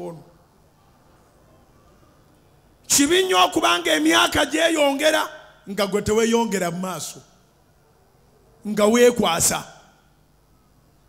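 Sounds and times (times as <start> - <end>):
man's amplified voice: 0.0 - 0.3, 2.9 - 7.4, 8.6 - 10.0.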